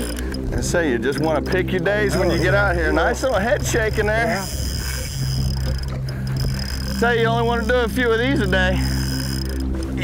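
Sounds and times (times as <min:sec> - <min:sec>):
outboard motor idling: 0:00.0 - 0:10.0
water noise: 0:00.0 - 0:10.0
wind: 0:00.0 - 0:10.0.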